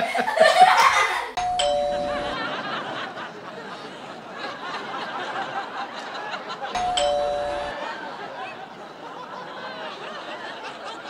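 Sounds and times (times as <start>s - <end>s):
laughter: 0.0s - 11.0s
two-note ding-dong chime: 1.4s - 2.4s, 6.8s - 7.8s.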